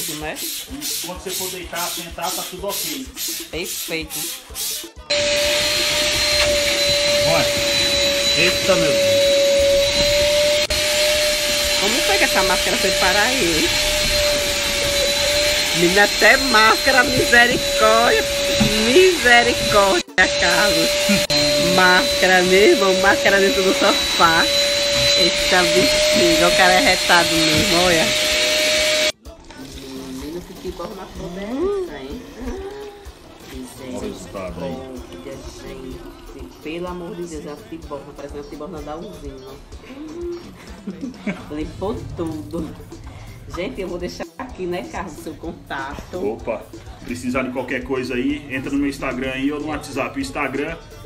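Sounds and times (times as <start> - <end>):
vacuum cleaner running: 5.1 - 29.2
water pouring into a bucket: 29.2 - 37.4.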